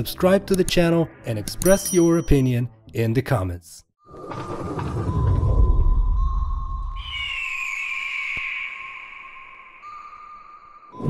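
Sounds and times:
steady high tone: 0:06.2 - 0:11.0.

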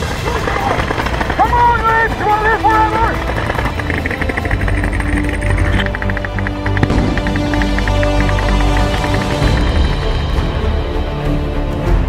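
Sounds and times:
loud crack: 0:00.0 - 0:10.3
music with low notes: 0:00.0 - 0:12.0
sharp snaps: 0:00.6 - 0:10.4.

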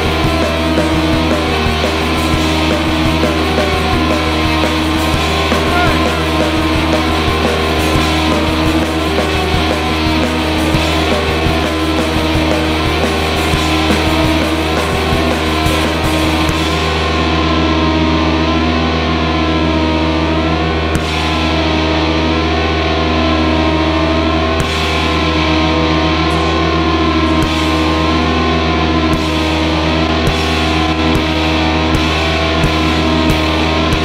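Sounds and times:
distorted electric guitar: 0:00.0 - 0:34.0
live rock band playing: 0:00.0 - 0:34.0
drum hits: 0:01.2 - 0:16.6.

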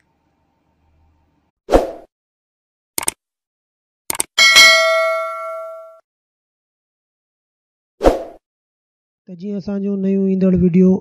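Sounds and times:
bell ding: 0:04.4 - 0:06.0.

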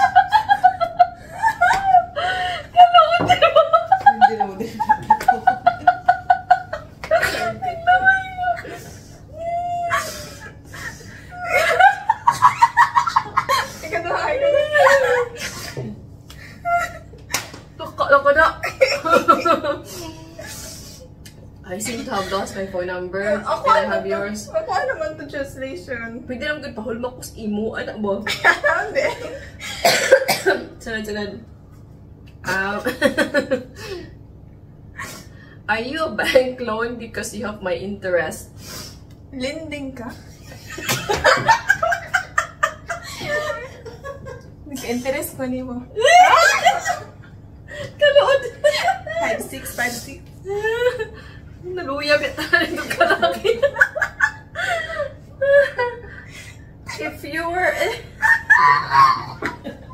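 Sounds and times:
women laughing loudly: 0:00.0 - 0:15.9, 0:16.5 - 0:17.2, 0:18.6 - 0:20.8, 0:32.8 - 0:34.0, 0:40.4 - 0:44.5, 0:46.0 - 0:49.9, 0:50.5 - 0:51.3, 0:52.2 - 0:59.9
woman speaking: 0:02.8 - 0:05.6, 0:07.1 - 0:10.1, 0:13.7 - 0:15.4, 0:17.8 - 0:20.1, 0:21.6 - 0:29.4, 0:30.8 - 0:31.5, 0:32.4 - 0:33.0, 0:35.7 - 0:38.5, 0:39.3 - 0:40.3, 0:44.7 - 0:46.9, 0:48.0 - 0:51.0, 0:51.6 - 0:53.7, 0:56.9 - 0:58.0
woman coughing: 0:07.2 - 0:07.8, 0:18.6 - 0:19.7, 0:29.8 - 0:30.8.

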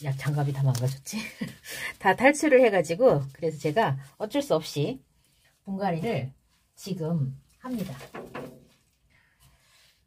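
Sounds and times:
person speaking: 0:05.7 - 0:08.2.

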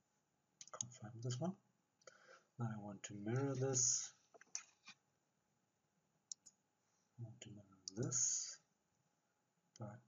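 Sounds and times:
computer mouse clicks: 0:00.6 - 0:00.9, 0:04.4 - 0:05.0, 0:06.3 - 0:06.6, 0:07.8 - 0:08.2.

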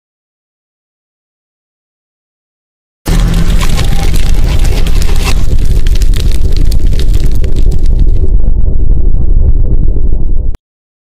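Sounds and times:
deep fire blast rumble: 0:03.1 - 0:10.6
dense crackling: 0:03.1 - 0:10.6.

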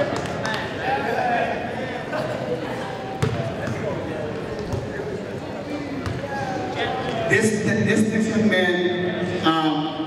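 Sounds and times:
basketball thumping on wooden court: 0:03.2 - 0:03.8.

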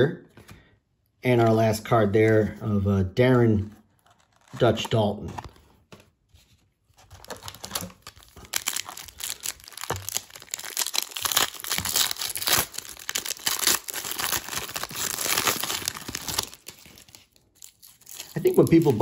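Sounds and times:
foil wrapper crinkling and tearing: 0:04.0 - 0:04.9, 0:07.1 - 0:19.0.

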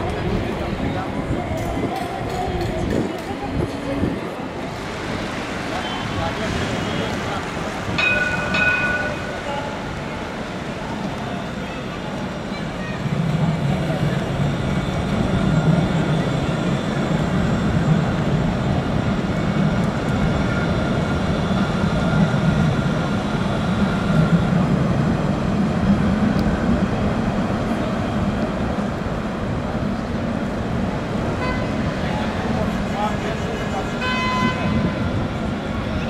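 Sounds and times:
city traffic: 0:00.0 - 0:36.0
tram passing: 0:00.0 - 0:36.0.

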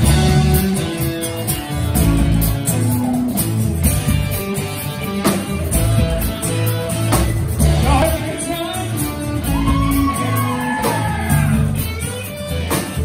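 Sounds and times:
drum kit: 0:00.0 - 0:13.0
electric bass: 0:00.0 - 0:13.0
electric guitars playing lead line: 0:00.0 - 0:13.0.

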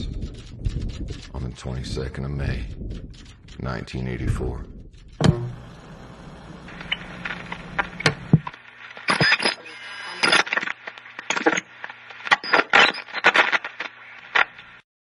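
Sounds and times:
low hum: 0:00.0 - 0:09.0
electronic clicks and crackles: 0:05.0 - 0:14.8.

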